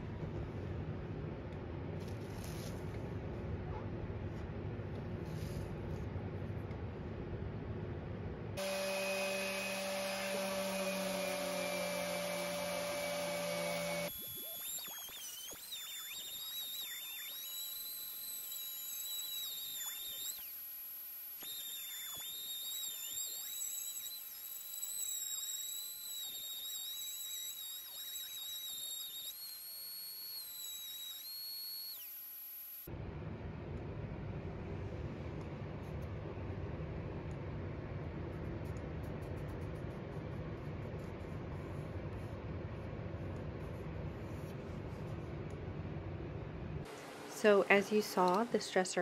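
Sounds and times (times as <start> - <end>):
orbital sander whining: 8.6 - 32.9.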